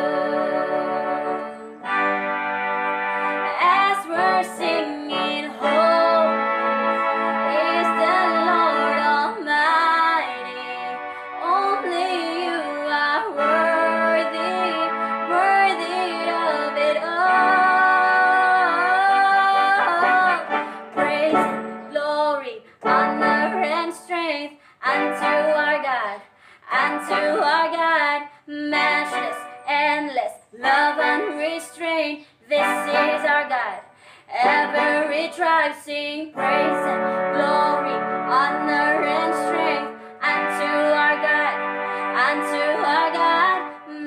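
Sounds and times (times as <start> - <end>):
woman singing: 0.0 - 2.0, 3.4 - 44.0
electronic keyboard: 0.0 - 24.0.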